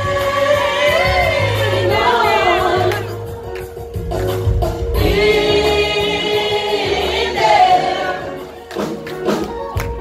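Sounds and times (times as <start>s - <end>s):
church choir singing: 0.0s - 3.1s, 5.0s - 8.6s.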